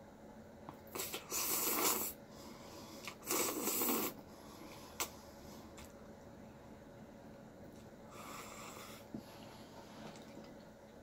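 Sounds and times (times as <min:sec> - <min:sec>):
slurping noodles: 0:00.9 - 0:02.2, 0:03.0 - 0:04.2.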